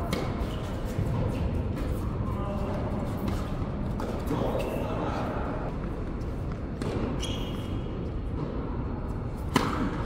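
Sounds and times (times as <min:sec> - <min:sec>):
racket hitting tennis ball: 0:00.0 - 0:02.0, 0:06.8 - 0:07.2, 0:08.2 - 0:10.0.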